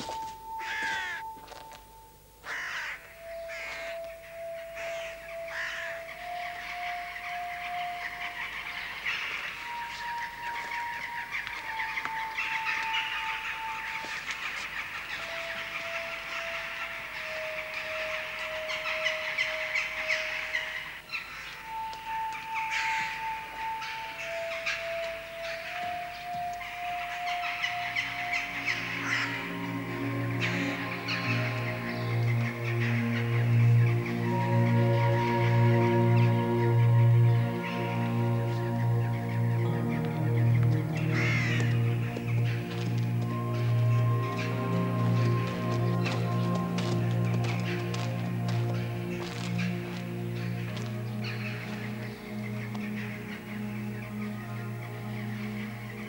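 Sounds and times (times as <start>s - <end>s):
crows cawing: 0.0s - 1.3s, 2.4s - 56.0s
slow melody background music: 0.0s - 56.0s.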